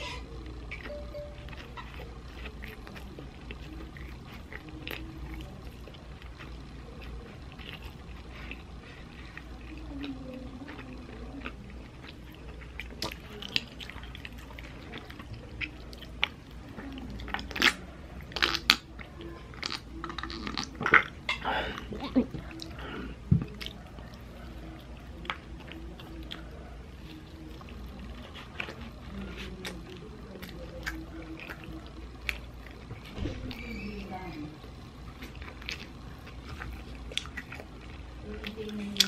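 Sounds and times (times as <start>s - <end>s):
chewing food: 0.0s - 39.0s.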